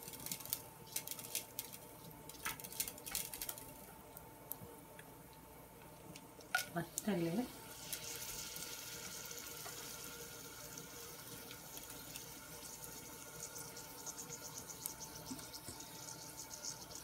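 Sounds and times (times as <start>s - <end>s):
mustard seeds popping: 0.0s - 4.6s
oil sizzling in a saucepan: 6.5s - 17.0s.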